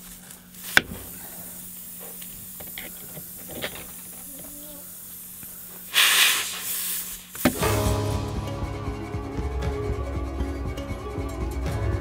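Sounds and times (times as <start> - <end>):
air hissing from tyre: 0.0 - 7.8.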